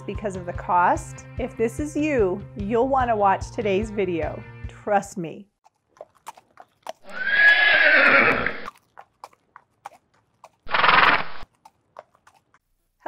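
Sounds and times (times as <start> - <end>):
horse whinnying: 7.0 - 8.7, 10.6 - 11.4.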